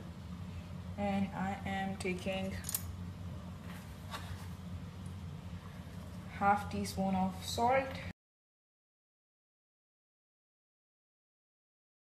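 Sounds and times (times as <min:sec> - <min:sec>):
steady low hum: 0:00.0 - 0:08.2.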